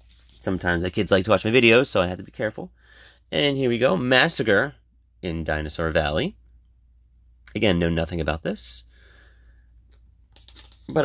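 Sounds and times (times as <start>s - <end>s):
man speaking: 3.3s - 6.4s, 7.5s - 8.9s.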